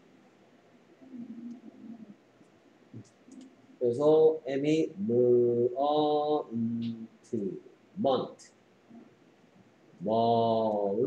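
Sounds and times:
man holding drawn-out syllable: 10.0 - 11.0.

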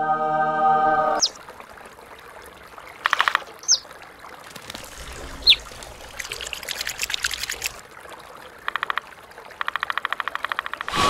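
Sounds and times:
water trickling into basin: 1.2 - 10.9.

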